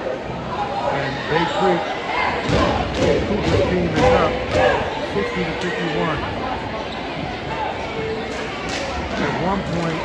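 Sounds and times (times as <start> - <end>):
indistinct echoing voices: 0.0 - 10.0.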